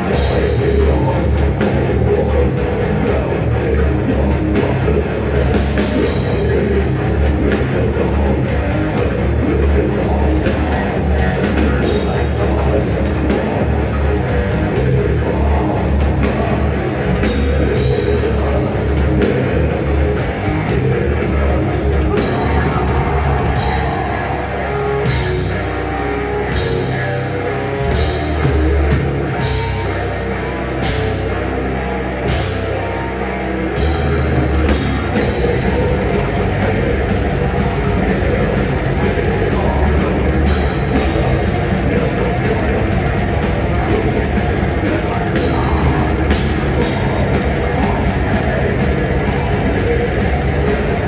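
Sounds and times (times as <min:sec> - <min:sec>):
death metal band playing live: 0:00.0 - 0:51.0
distorted electric guitars: 0:00.0 - 0:51.0
drum kit driving beat: 0:00.0 - 0:51.0.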